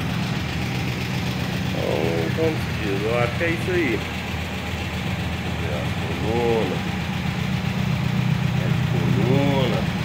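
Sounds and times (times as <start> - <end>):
air-cooled engine idling: 0.0 - 10.0.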